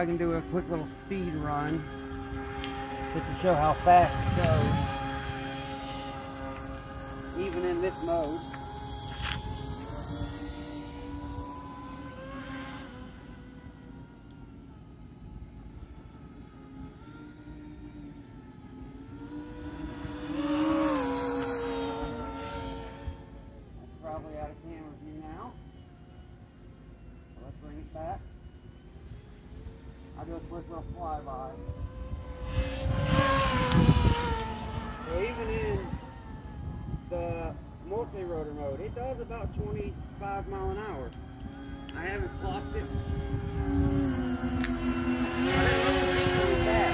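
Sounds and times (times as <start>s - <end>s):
model aircraft propellers whining: 0.0s - 46.9s.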